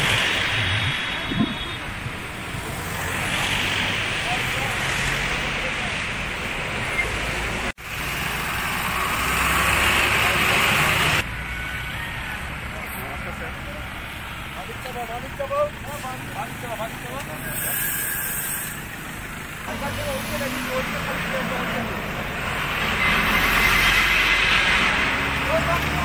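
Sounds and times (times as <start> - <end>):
vehicle engines and tyre noise: 0.0 - 26.0.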